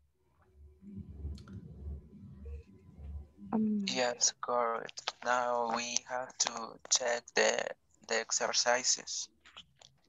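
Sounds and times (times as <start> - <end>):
faint low rumble: 0.3 - 7.4.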